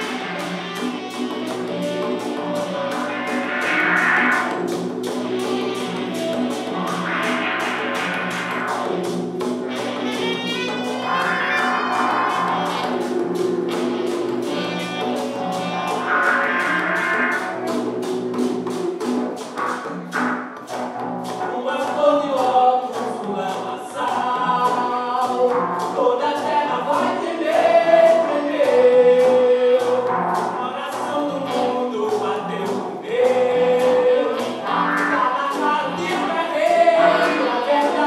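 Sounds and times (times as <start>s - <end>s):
saxophone: 0.0s - 18.6s, 32.5s - 38.0s
conga drums: 0.0s - 38.0s
electric guitar: 0.0s - 38.0s
percussion beat: 0.0s - 38.0s
voices singing together: 22.9s - 38.0s.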